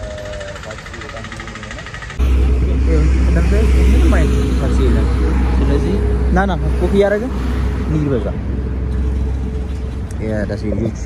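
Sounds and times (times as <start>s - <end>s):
people's voices: 0.0s - 8.5s
vehicle engines rumbling: 0.0s - 11.0s.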